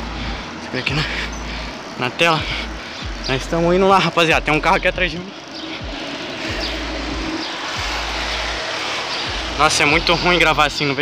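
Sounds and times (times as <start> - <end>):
car engine and tyres passing: 0.0 - 11.0.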